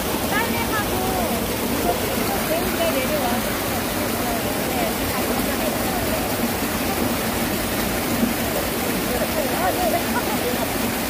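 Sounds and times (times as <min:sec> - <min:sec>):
stream splashing over stones: 0:00.0 - 0:11.0.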